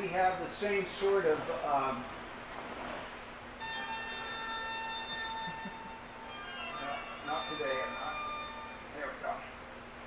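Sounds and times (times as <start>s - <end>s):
ringing chime tone: 3.6s - 9.0s.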